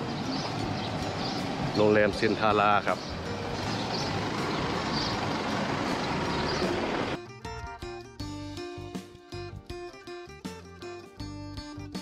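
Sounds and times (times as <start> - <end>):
vehicle engines running: 0.0 - 7.2
background music: 0.0 - 12.0.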